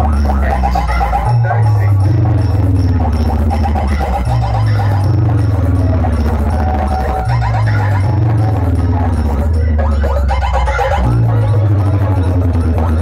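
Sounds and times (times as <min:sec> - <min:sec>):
dance music with deep bass: 0:00.0 - 0:13.0.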